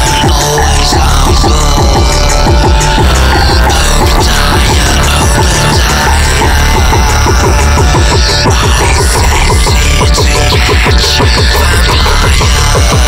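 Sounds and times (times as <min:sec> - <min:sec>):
pulsing bass: 0:00.0 - 0:13.0.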